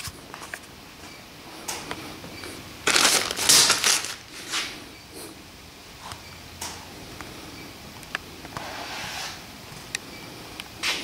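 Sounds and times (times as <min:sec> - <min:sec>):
plastic bag crinkling: 0:02.8 - 0:04.7.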